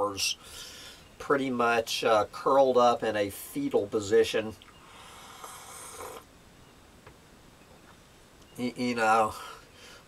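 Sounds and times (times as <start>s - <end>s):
man slurping from a mug: 5.1s - 6.3s.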